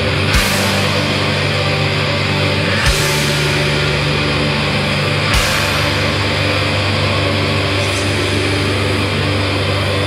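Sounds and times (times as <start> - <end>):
distorted guitars droning: 0.0 - 10.0.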